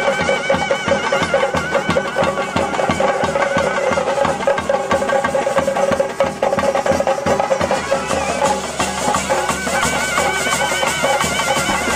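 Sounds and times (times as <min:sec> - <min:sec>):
drums beaten with sticks: 0:00.0 - 0:11.9
wind instrument holding notes: 0:00.0 - 0:11.9.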